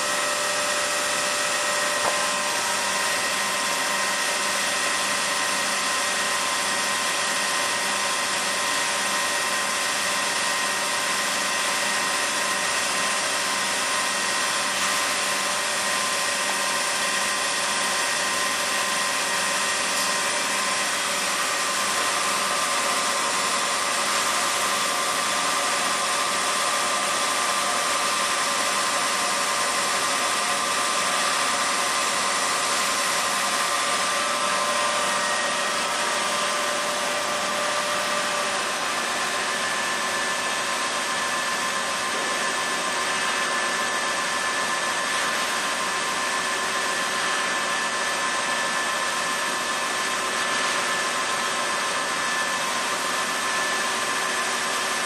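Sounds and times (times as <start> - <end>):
grinder high whine: 0.0 - 55.0.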